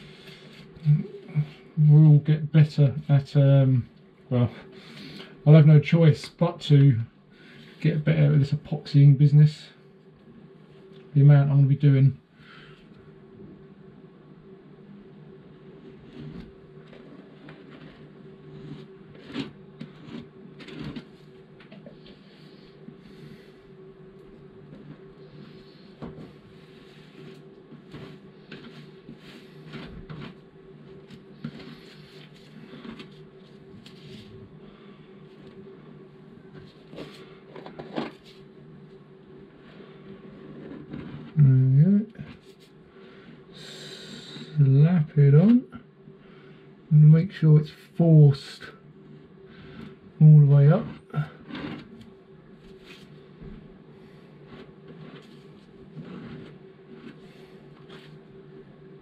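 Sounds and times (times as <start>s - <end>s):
steady low hum: 0.0s - 59.0s
plastic applicator scraping filler: 54.4s - 58.2s.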